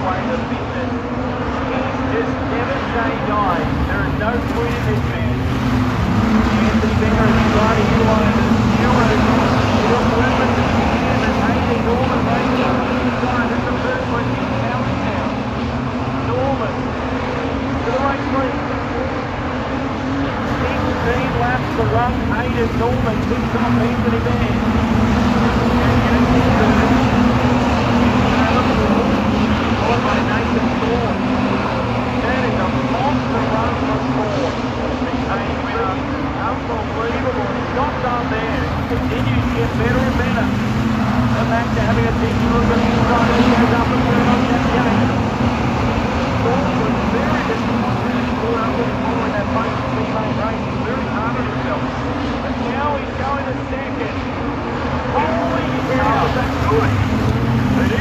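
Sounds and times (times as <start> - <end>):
commentator over public address: 0.0 - 58.0
race car engines droning: 0.0 - 58.0.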